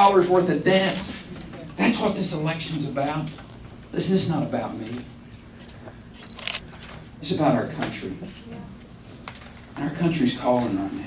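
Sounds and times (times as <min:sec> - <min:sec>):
low room hum: 0:00.0 - 0:11.0
camera focus beep: 0:06.2 - 0:06.6
camera shutter clicks: 0:06.2 - 0:06.6.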